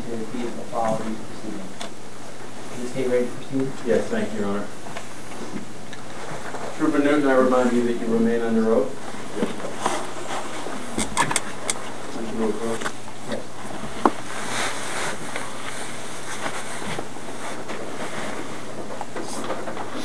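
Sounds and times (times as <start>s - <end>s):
steady hiss: 0.0s - 20.0s
sharp clicks and knocks: 10.9s - 11.9s.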